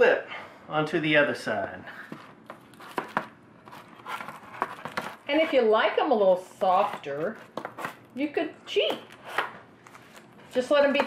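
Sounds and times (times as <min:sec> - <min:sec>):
parchment paper crinkling: 0:02.4 - 0:05.6.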